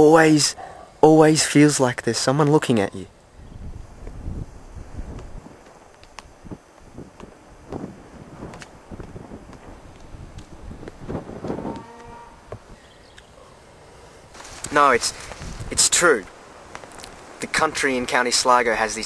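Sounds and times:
wind buffeting microphone: 3.1 - 18.3.

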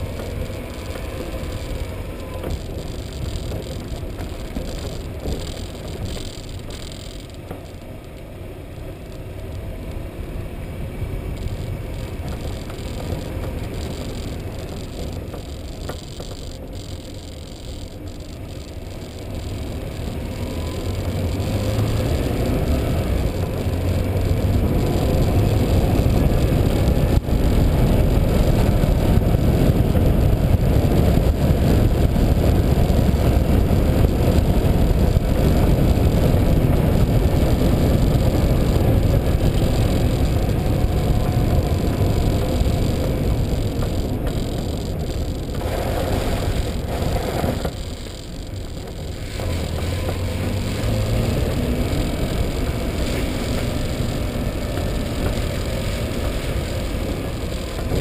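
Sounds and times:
road and wind rumble: 0.0 - 58.0.

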